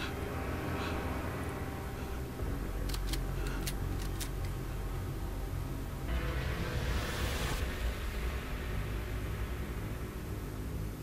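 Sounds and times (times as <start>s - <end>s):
low dark drone: 0.0s - 11.0s.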